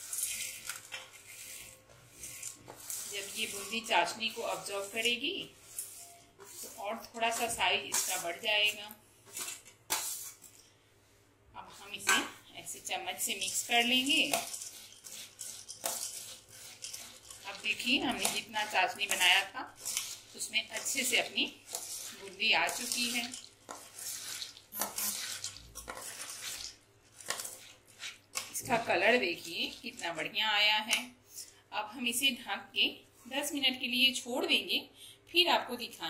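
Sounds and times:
metal spoon stirring in steel bowl: 0.0s - 10.8s, 11.6s - 31.5s
soft rustle into syrup: 0.0s - 12.6s, 13.2s - 30.4s.

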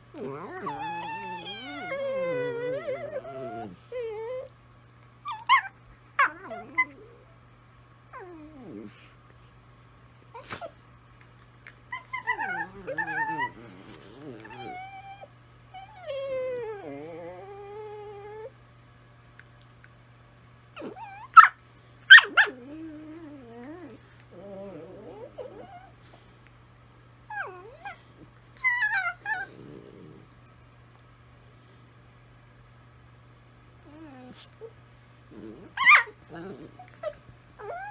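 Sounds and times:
dogs howling and whining: 0.0s - 4.6s, 5.2s - 7.4s, 8.0s - 9.2s, 11.8s - 18.6s, 20.7s - 26.2s, 27.3s - 30.3s, 33.8s - 37.9s
dog yips: 20.8s - 22.5s.

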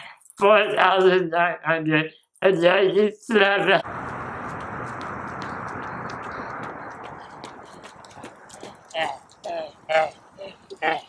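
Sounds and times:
steady rushing noise: 3.8s - 9.8s
running footsteps on asphalt: 3.8s - 10.8s.

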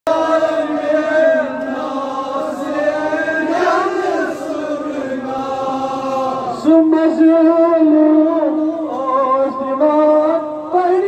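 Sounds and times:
men chanting a lament: 0.1s - 11.0s.

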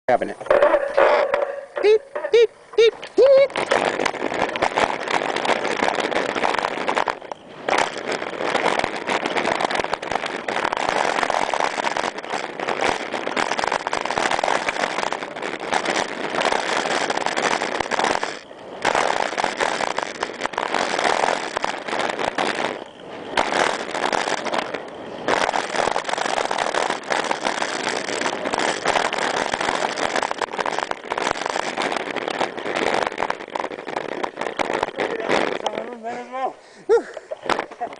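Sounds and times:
bike tyres and rattle: 0.1s - 37.9s
air rushing over microphone: 0.2s - 37.9s.

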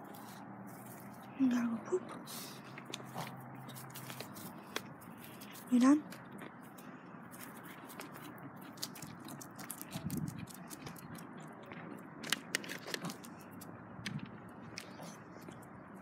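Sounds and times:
footsteps on grass and concrete: 2.7s - 5.8s.

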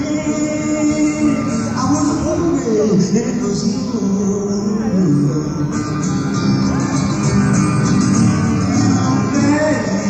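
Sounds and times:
guitar: 0.0s - 10.0s
live band playing: 0.0s - 10.0s.

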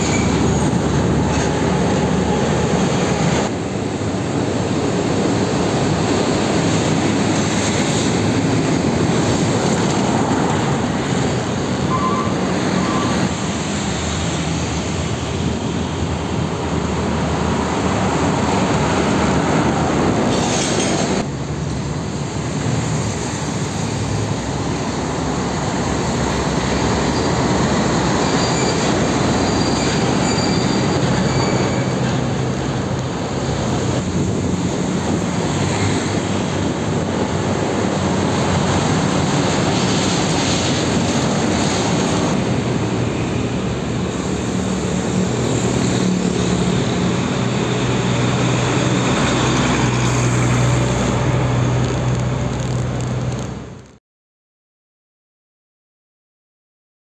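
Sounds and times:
heavy trucks passing: 0.0s - 53.9s.

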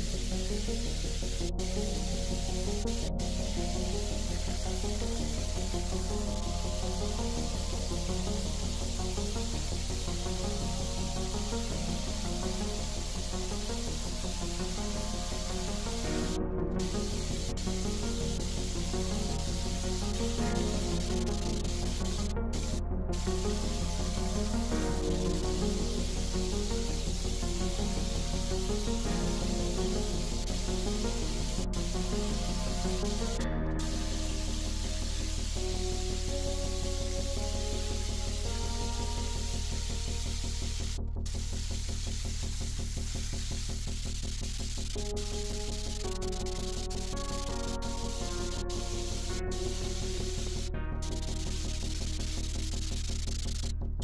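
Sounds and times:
air spray gun hissing: 0.0s - 53.7s
background music: 0.0s - 54.0s.

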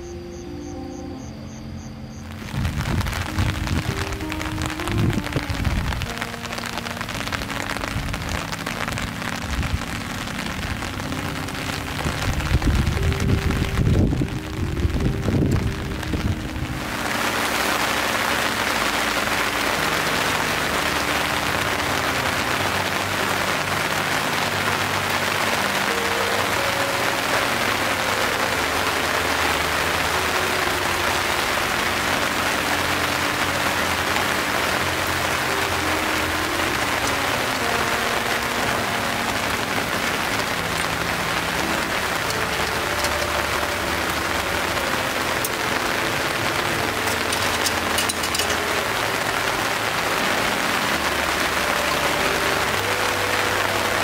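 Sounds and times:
steady rain: 0.0s - 54.0s.

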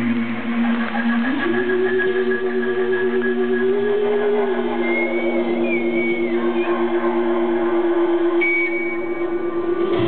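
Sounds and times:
high wavering gliding tone: 0.0s - 10.0s.

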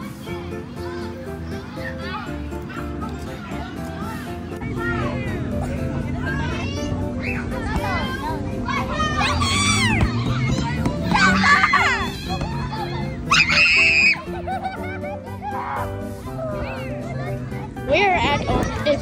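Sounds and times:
background music: 0.0s - 19.0s
children playing and shouting: 0.0s - 19.0s.

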